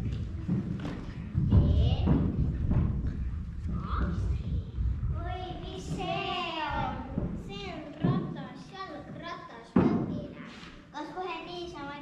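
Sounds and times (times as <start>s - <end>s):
child's sing-song voice: 5.2s - 8.4s.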